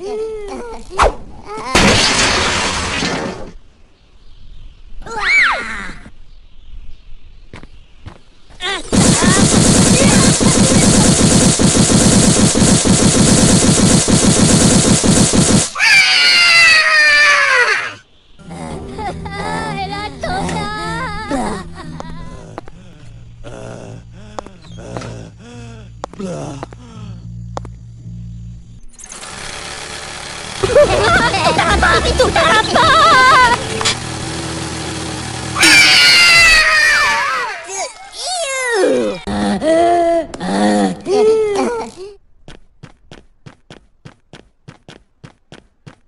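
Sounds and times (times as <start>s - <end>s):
loud crash sound effect: 1.8s - 3.6s
high wavering gibberish voice: 18.4s - 25.4s
low steady hum: 18.4s - 29.0s.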